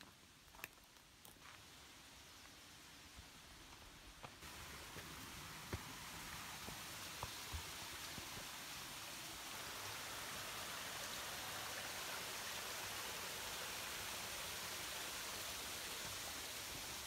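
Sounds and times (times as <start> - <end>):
creek water rushing: 4.3 - 17.0.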